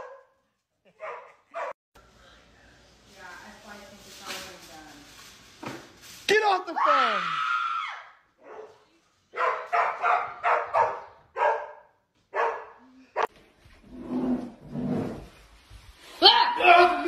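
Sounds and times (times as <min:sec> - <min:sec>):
dog barking: 0:00.0 - 0:00.4, 0:01.0 - 0:01.8, 0:08.4 - 0:13.3.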